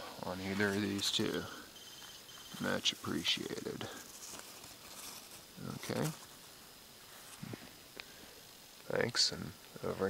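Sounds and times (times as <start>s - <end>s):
faint outdoor hiss: 0.0s - 10.0s
man speaking a word: 5.6s - 6.2s.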